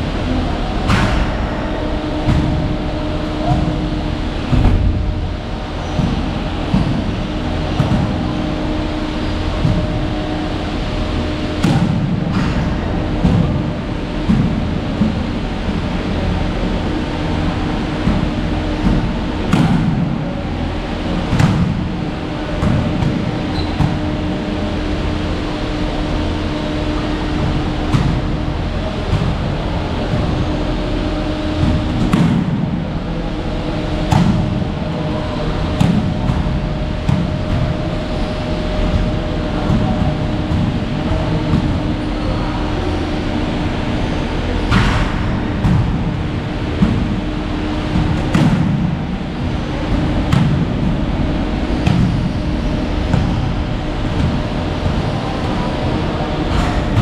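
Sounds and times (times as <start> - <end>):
gym rumble and hum: 0.0 - 57.0.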